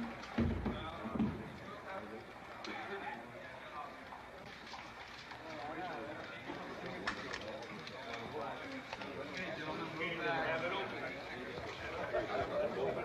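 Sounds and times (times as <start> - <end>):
indistinct background talking: 0.0 - 13.0.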